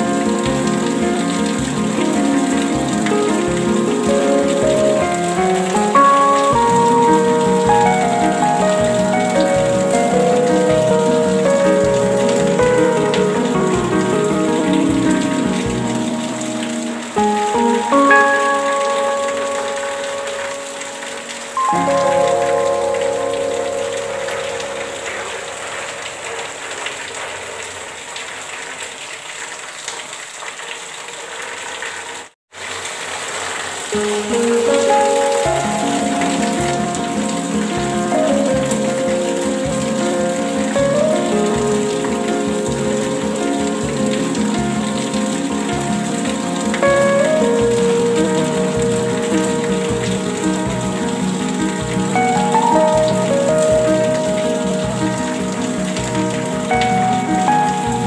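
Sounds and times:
calm instrumental music: 0.0 - 26.6, 33.9 - 58.0
steady rain: 0.0 - 58.0.

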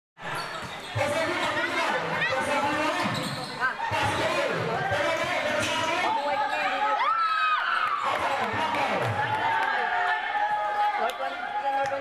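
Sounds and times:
voices and shouts: 1.0 - 12.0
short squeaks: 3.1 - 3.7.

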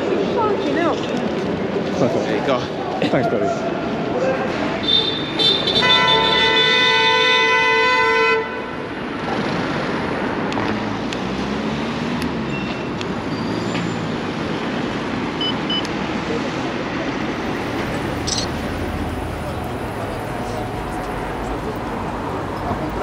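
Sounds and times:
passing cars: 8.3 - 23.0.

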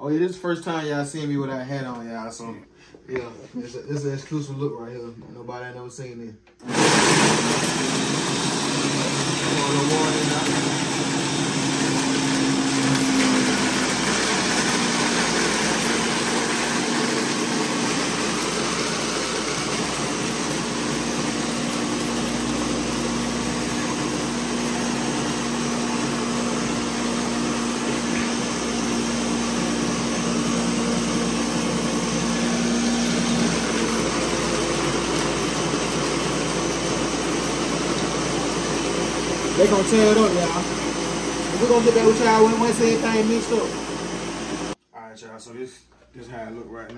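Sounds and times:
blender motor running: 6.6 - 44.8.

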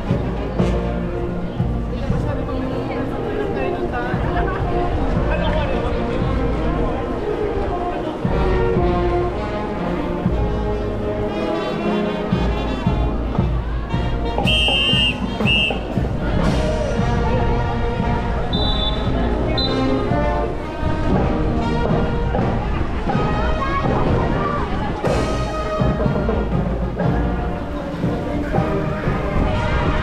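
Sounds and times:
crowd voices: 0.0 - 30.0
marching band playing: 0.0 - 30.0.

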